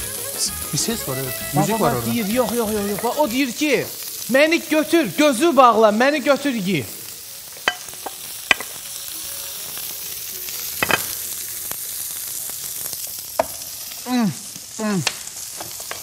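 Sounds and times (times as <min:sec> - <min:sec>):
meat sizzling in grill pan: 0:00.0 - 0:16.0.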